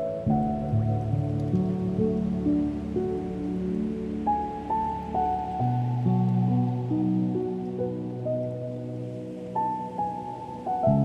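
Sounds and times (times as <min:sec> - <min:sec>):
faint ocean waves: 0:00.0 - 0:11.0
gentle solo piano: 0:00.0 - 0:11.0.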